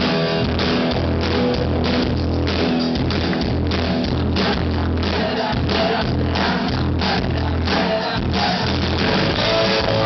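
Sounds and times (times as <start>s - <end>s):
ska band playing live: 0.0s - 10.0s.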